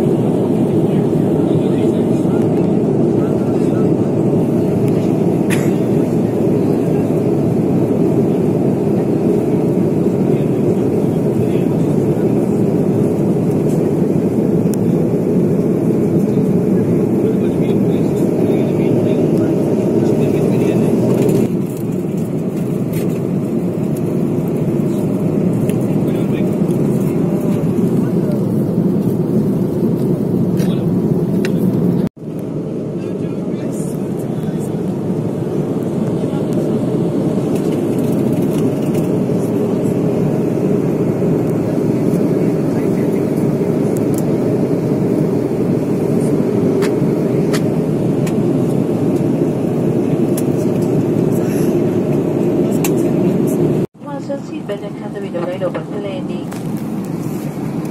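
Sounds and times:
airliner cabin engine rush: 0.0 - 57.9.

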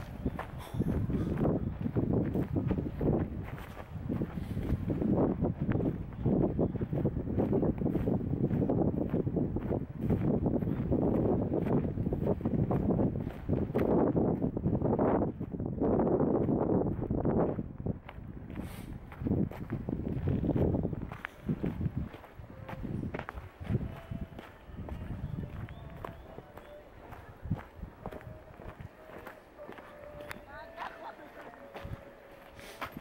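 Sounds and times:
wind buffeting microphone: 0.0 - 30.8.

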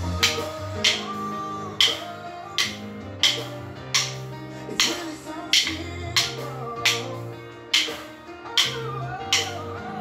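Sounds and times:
drumsticks clacking: 0.0 - 9.9
pop song with guitar: 0.0 - 10.0.

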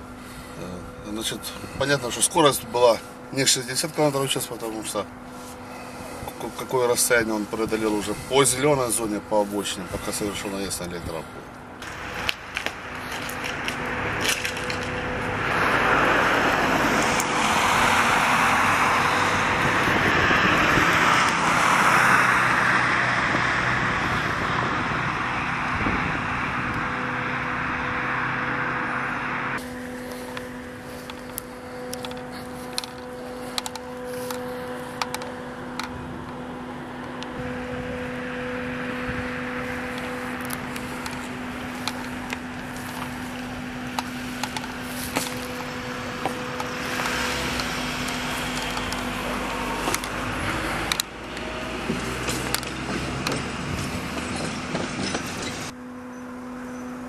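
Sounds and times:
roadside traffic hum: 0.0 - 57.0
sharp clicks and knocks: 50.8 - 55.7.

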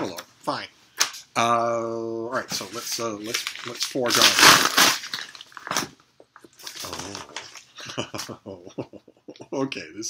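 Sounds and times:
paper packaging crackle: 2.7 - 6.0, 6.6 - 7.6.

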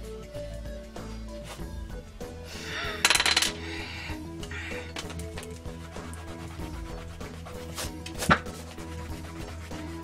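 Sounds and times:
background music: 0.0 - 10.0
pen clattering on glass desk: 3.0 - 3.6.

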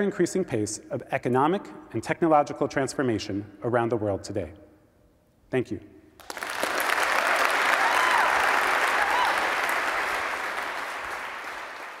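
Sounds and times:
audience applause: 6.2 - 12.0.

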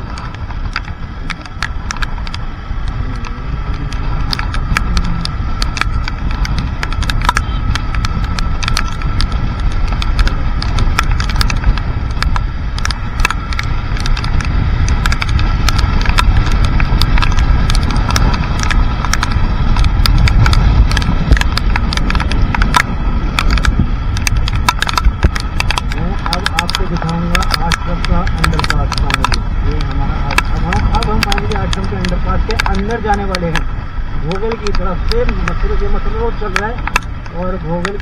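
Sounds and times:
faint steady whine: 0.0 - 38.0
raindrops ticking on camera: 0.0 - 38.0
wind rumbling on microphone: 0.0 - 38.0.

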